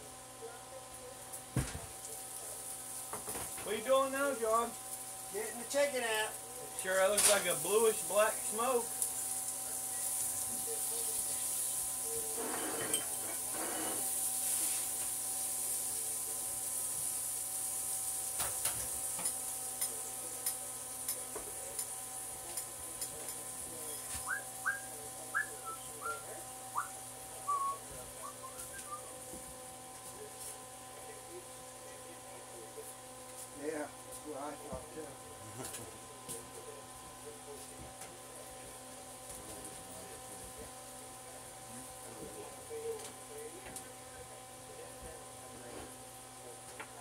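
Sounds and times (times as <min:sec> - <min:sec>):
food sizzling: 0:02.0 - 0:29.4.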